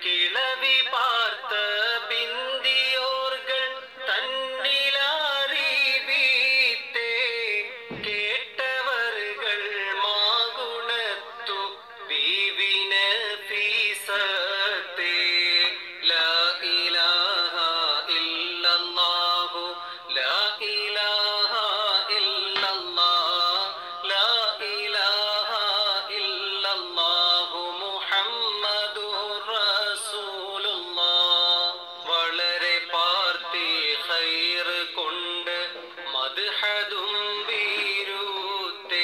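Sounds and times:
person singing devotional song: 0.0 - 39.0.

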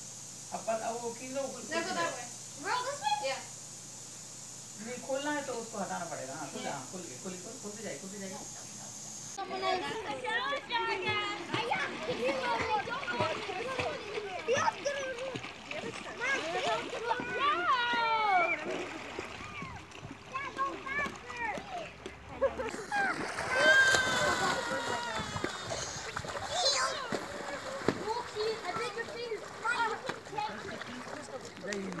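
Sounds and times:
people talking indistinctly: 4.8 - 32.0
children shouting: 9.8 - 22.0, 22.7 - 30.4
water splashing: 10.9 - 32.0.

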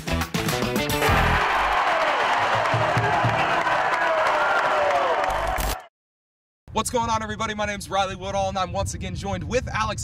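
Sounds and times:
crowd cheering and clapping: 1.0 - 5.9
shouts and whoops: 1.0 - 5.9.

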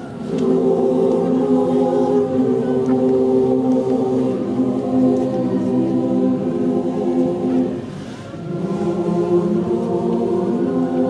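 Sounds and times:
mixed choir singing held chords: 0.0 - 11.0.

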